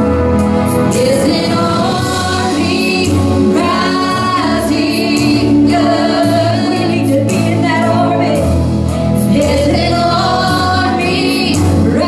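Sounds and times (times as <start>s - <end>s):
instrumental accompaniment: 0.0s - 12.0s
women singing worship song: 0.9s - 8.6s, 9.3s - 12.0s.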